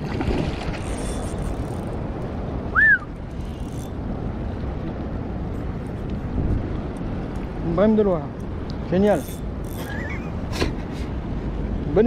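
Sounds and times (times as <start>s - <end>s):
river water lapping: 0.0s - 11.8s
wind buffeting microphone: 0.0s - 12.0s.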